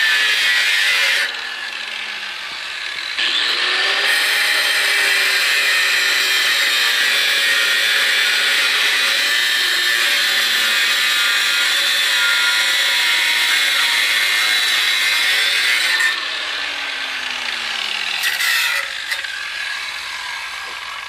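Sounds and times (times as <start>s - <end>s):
angle grinder cutting steel: 0.0s - 21.0s.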